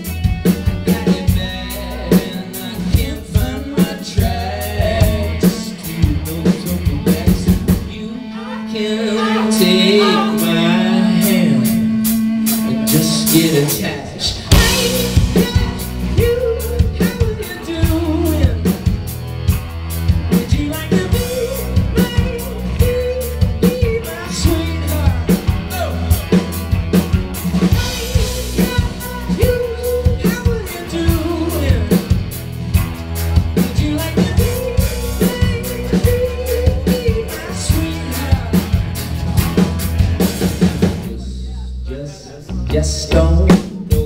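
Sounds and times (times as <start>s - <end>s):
rock band playing live: 0.0s - 44.0s.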